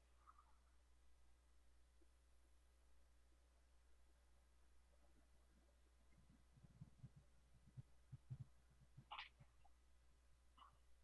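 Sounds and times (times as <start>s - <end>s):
faint steady low hum: 0.0s - 11.0s
soft low thumps: 6.1s - 9.6s.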